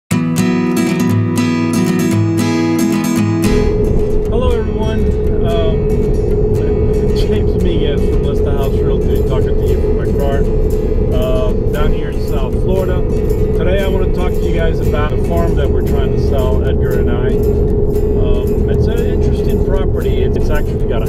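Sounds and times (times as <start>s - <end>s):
car road and engine rumble: 3.4s - 21.0s
thin steady hum: 3.4s - 21.0s
man talking: 4.3s - 10.5s, 11.1s - 17.5s, 18.2s - 21.0s.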